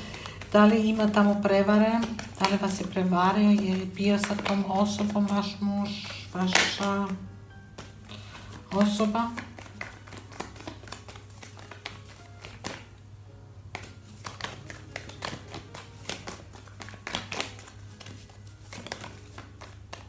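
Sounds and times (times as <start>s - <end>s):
cards being shuffled: 0.0s - 13.0s, 13.7s - 20.0s.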